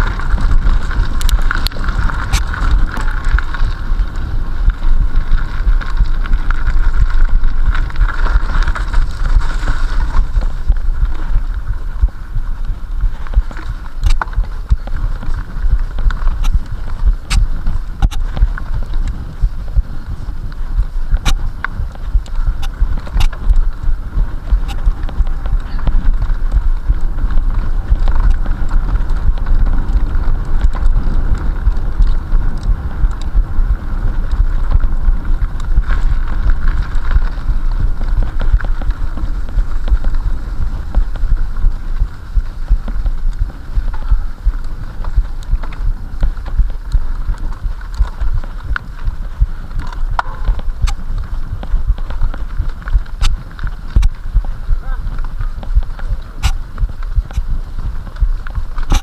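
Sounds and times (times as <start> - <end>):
bike bumping and rattling: 0.0 - 59.0
wind rumble on microphone: 0.0 - 59.0
sharp clicks: 13.3 - 20.3, 21.1 - 23.6, 55.1 - 59.0.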